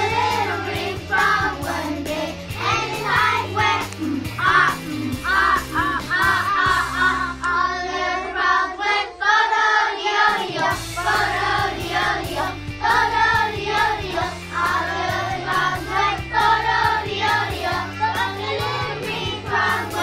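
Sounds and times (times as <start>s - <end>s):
instrumental accompaniment: 0.0s - 7.5s
children singing: 0.0s - 20.0s.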